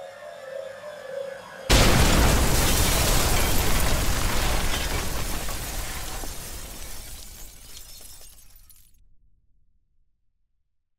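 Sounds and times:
fragments clattering: 0:01.7 - 0:08.9
stone shattering: 0:01.7 - 0:09.0.

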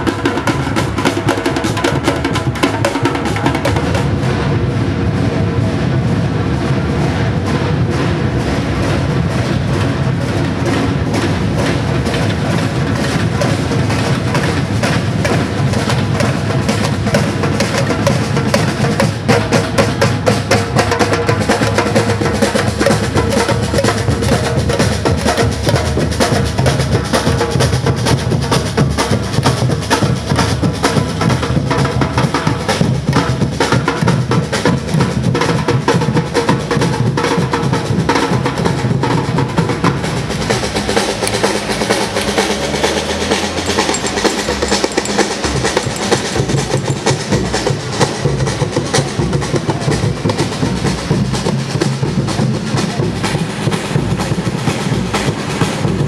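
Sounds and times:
deep bass drums: 0:00.0 - 0:56.0
snare drums: 0:00.0 - 0:56.0.

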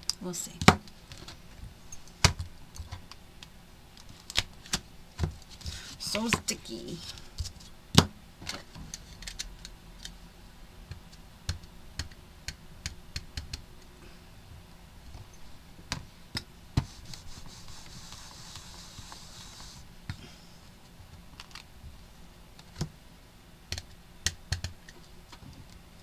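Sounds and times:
hands tapping and clicking: 0:10.9 - 0:13.9, 0:23.7 - 0:25.8
soft rustle: 0:16.8 - 0:19.9.

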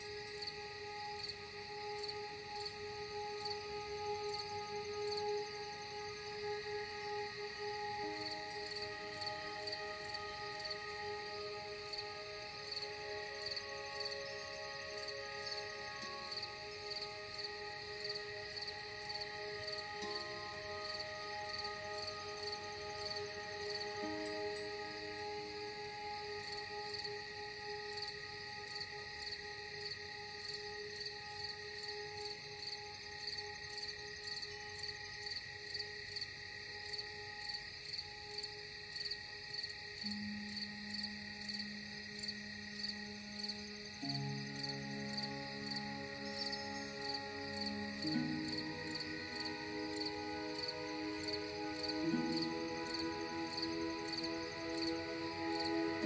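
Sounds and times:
ambient music chords: 0:00.0 - 0:38.6, 0:39.2 - 0:56.0
crickets chirping: 0:00.0 - 0:56.0.

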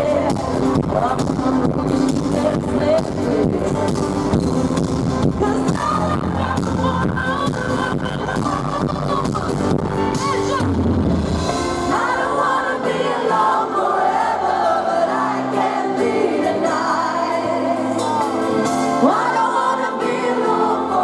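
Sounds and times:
woman singing: 0:00.0 - 0:04.4, 0:05.2 - 0:11.0, 0:11.7 - 0:21.0
bass guitar: 0:00.0 - 0:12.0
piano: 0:00.0 - 0:21.0.

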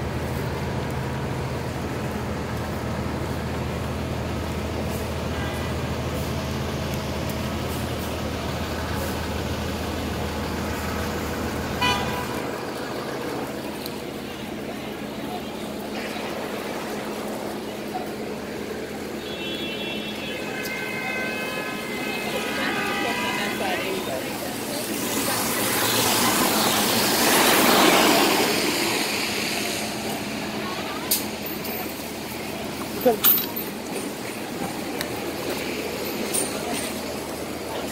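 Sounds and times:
bus engine humming: 0:00.0 - 0:37.9
city street traffic: 0:00.0 - 0:37.9
tyre noise on wet road: 0:00.0 - 0:37.9.

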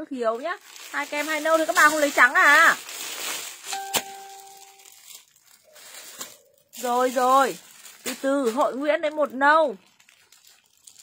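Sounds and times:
plastic bags crinkling: 0:00.1 - 0:11.0.

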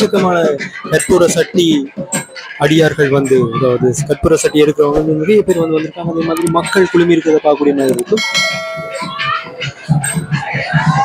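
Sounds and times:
crowd voices: 0:00.0 - 0:11.0
bell ringing: 0:04.2 - 0:11.0.

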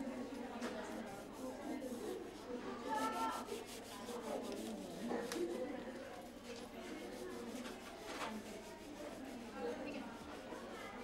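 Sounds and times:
sandpaper rubbing on wood: 0:03.0 - 0:05.6, 0:07.0 - 0:11.0.

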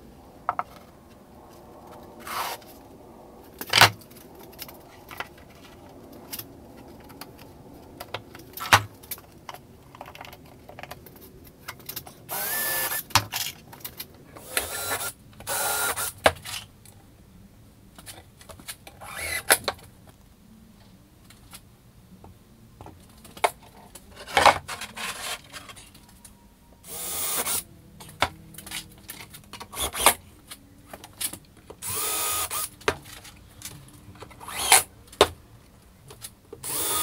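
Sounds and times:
cordless drill running: 0:12.3 - 0:13.0, 0:14.4 - 0:16.1, 0:26.8 - 0:27.6, 0:31.8 - 0:32.7, 0:36.6 - 0:37.0.

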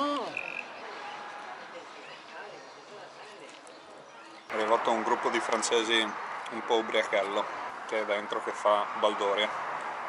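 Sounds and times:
murmur of voices: 0:00.0 - 0:06.6.

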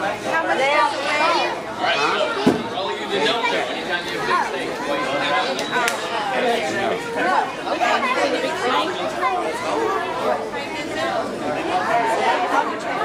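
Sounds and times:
indistinct chatter of voices: 0:00.0 - 0:13.0.

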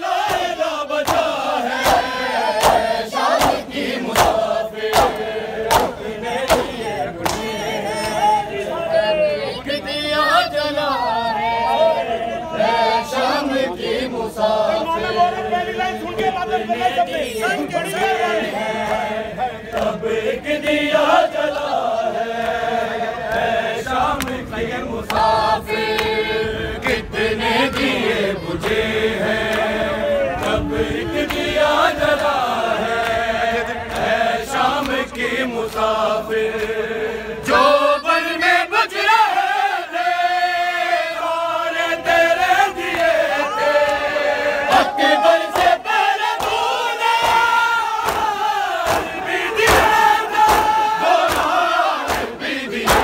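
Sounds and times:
male chorus singing a lament: 0:00.0 - 0:53.0
hands slapping bare chests: 0:00.2 - 0:07.5, 0:45.6 - 0:53.0.

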